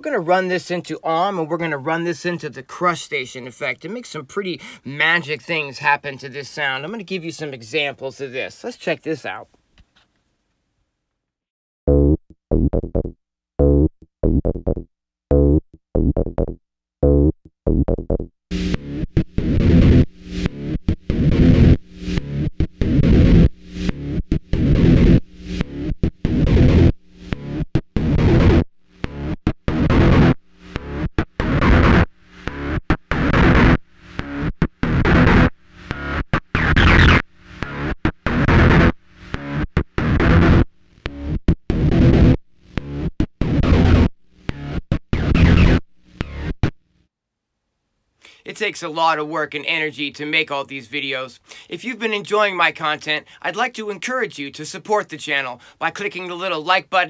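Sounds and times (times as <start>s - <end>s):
distorted acid synth bassline: 11.9s - 46.7s.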